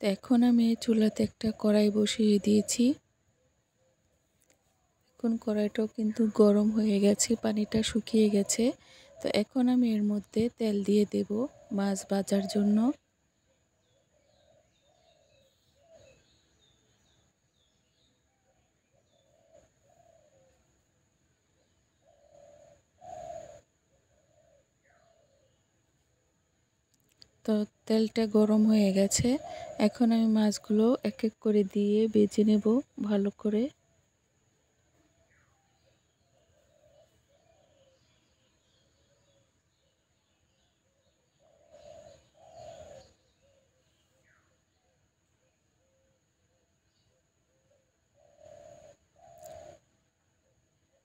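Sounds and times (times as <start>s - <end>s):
dove cooing: 19.0s - 20.6s, 22.0s - 25.6s, 29.0s - 30.1s, 36.3s - 39.4s, 41.0s - 44.4s, 47.6s - 50.0s.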